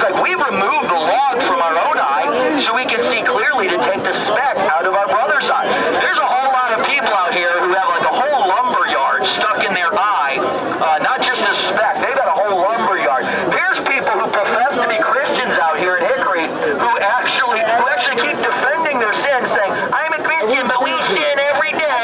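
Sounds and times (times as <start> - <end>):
crowd voices: 0.0 - 22.0
man preaching through loudspeaker: 0.0 - 22.0.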